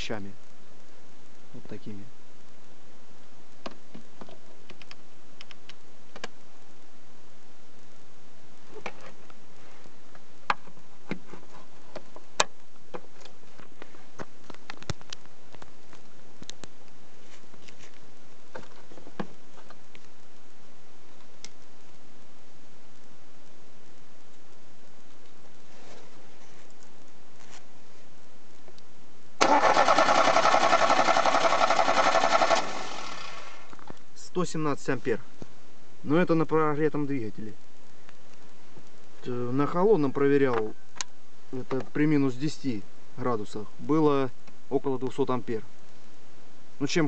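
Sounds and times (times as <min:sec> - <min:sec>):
steady hiss: 0:00.0 - 0:47.0
starter motor cranking engine: 0:29.4 - 0:33.6.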